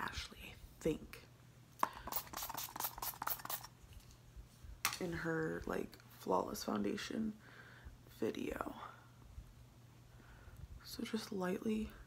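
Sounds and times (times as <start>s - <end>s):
spray bottle spritzes: 2.0s - 3.7s.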